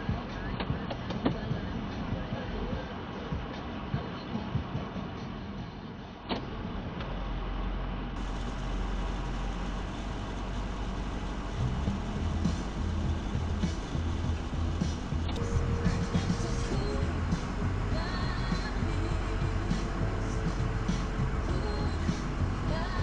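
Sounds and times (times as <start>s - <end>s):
faint music: 0.0s - 23.0s
pickup truck engine rumbling: 0.0s - 23.0s.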